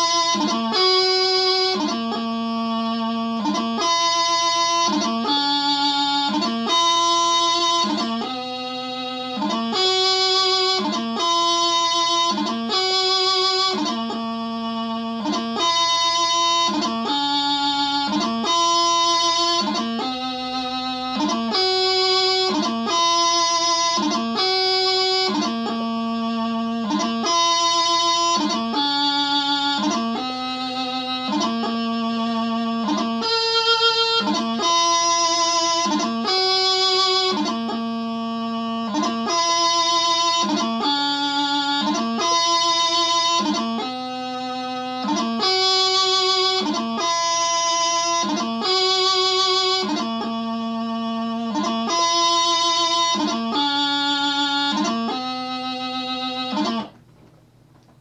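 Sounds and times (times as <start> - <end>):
practice chanter slow melody: 0.0 - 58.0.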